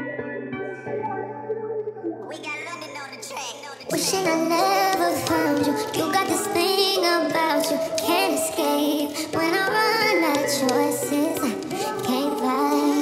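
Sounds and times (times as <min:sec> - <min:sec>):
r and b backing track: 0:00.0 - 0:13.0
pitched-up female vocal: 0:02.3 - 0:13.0.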